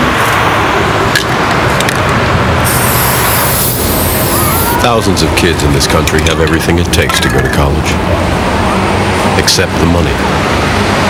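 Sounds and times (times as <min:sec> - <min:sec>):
loud city street traffic: 0:00.0 - 0:11.0
high hiss: 0:02.6 - 0:04.9.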